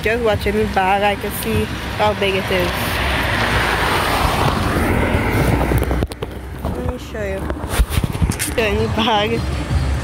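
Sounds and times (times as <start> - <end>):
wind buffeting microphone: 0.0 - 9.4
vehicle road and wind noise: 0.0 - 10.0.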